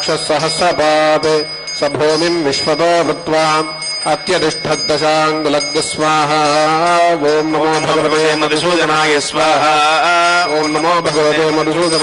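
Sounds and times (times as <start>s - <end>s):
men chanting: 0.0s - 12.0s.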